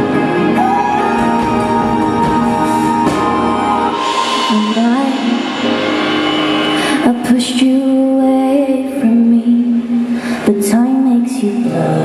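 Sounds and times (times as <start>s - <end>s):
band with electric guitars and drums: 0.0s - 10.5s
woman singing: 0.4s - 5.8s, 6.8s - 12.0s
sharp drum or cymbal hits: 1.2s - 8.2s.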